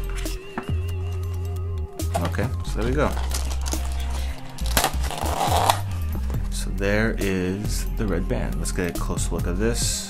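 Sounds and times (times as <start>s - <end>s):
background music: 0.0s - 10.0s
cardboard and paper packaging rustle: 2.1s - 6.0s.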